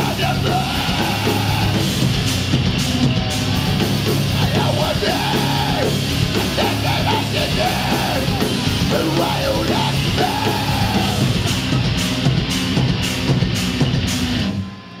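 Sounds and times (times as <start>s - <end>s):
yelled vocals: 0.0s - 14.4s
hardcore band playing live: 0.0s - 14.9s.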